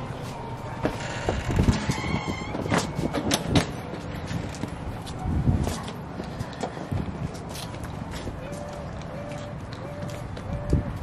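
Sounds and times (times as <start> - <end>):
luggage knocks and clacks: 0.8 - 4.8.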